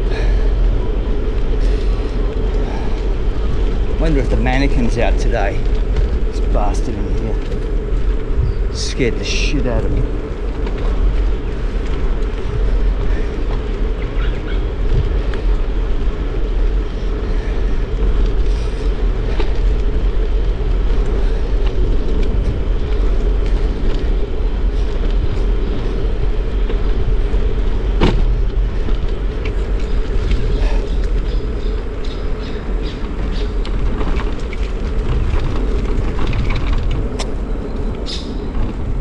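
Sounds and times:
bicycle tyres rumbling: 0.0s - 39.0s
wind on microphone: 0.0s - 39.0s.

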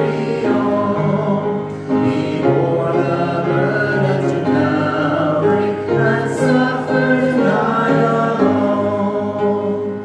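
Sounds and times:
congregation singing a hymn: 0.0s - 10.0s
upright piano: 0.0s - 10.0s.

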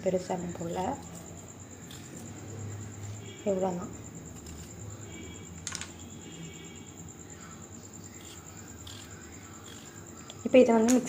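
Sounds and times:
steady low hum: 0.0s - 10.8s.

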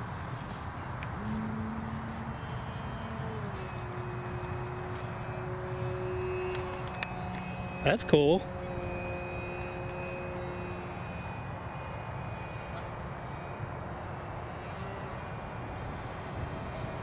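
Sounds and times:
distant aircraft droning: 0.0s - 17.0s
faint steady tones: 0.0s - 17.0s
outdoor background noise: 0.0s - 17.0s.

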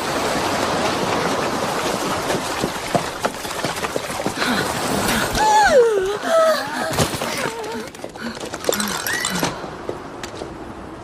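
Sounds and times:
hooves splashing in water: 0.0s - 5.7s
surf washing on shore: 0.0s - 5.9s.

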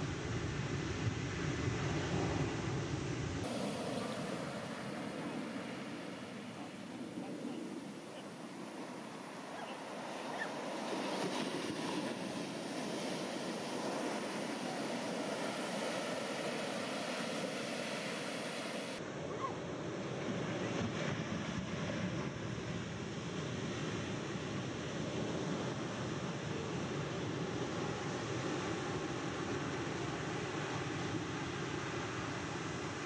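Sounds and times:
ocean waves breaking: 3.4s - 19.1s.

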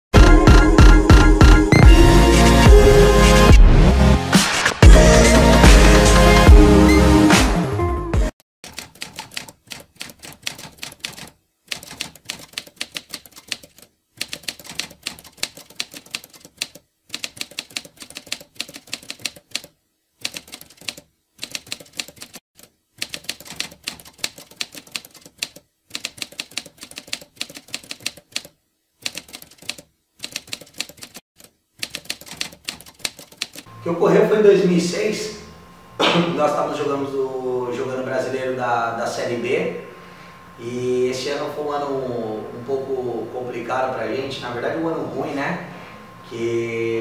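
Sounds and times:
typewriter keys clacking: 8.6s - 33.7s.

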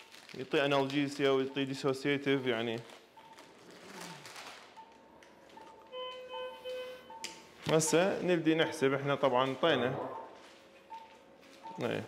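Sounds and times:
patient monitor beeps: 0.0s - 12.0s.

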